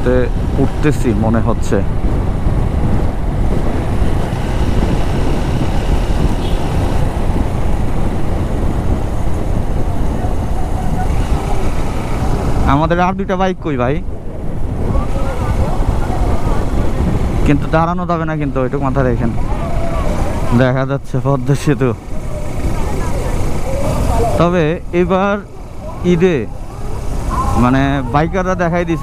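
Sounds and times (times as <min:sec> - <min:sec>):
motorcycle road and engine noise: 0:00.0 - 0:29.0
wind rush over microphone: 0:00.0 - 0:29.0.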